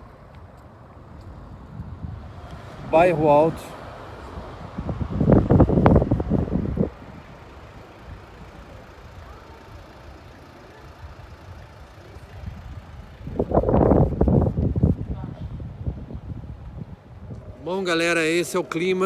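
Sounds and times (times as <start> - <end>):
vehicle rumbling along street: 0.0 - 19.0.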